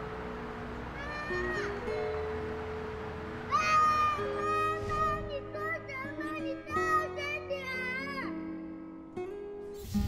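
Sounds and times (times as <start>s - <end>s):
soft music of held notes: 0.0s - 10.0s
baby crying: 1.0s - 1.9s.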